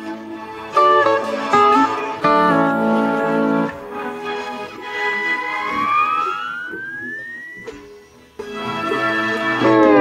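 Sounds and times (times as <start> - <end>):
pedal steel guitar note bending: 0.8 - 4.0, 4.8 - 7.9.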